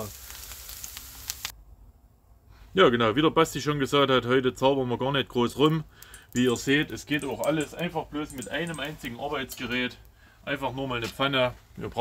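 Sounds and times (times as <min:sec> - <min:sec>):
sauerkraut sizzling in a pan: 0:00.0 - 0:01.5.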